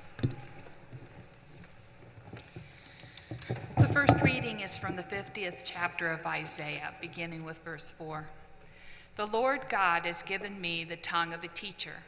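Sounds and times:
woman speaking: 3.8s - 8.4s, 9.2s - 12.0s.

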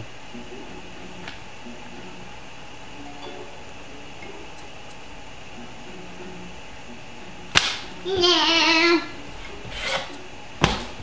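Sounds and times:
faint low background: 0.0s - 11.0s
sharp crack: 7.5s - 7.9s.

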